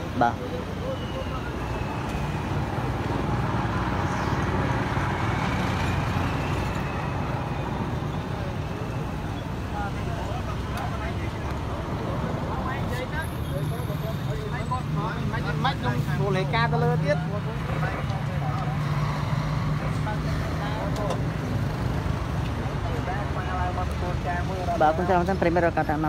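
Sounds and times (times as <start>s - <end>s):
bystanders talking: 0.0s - 26.0s
road traffic rumble: 0.0s - 26.0s.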